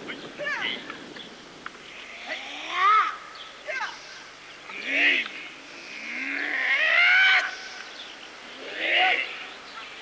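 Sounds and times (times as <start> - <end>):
long drawn-out martial arts shout: 2.2 - 4.0, 4.8 - 5.3, 6.6 - 7.8, 8.6 - 9.4.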